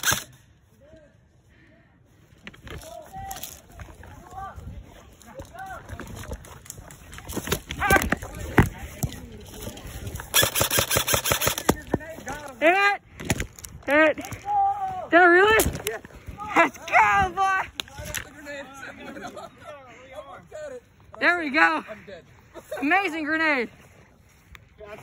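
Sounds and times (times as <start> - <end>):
airsoft gunfire: 10.3 - 11.9.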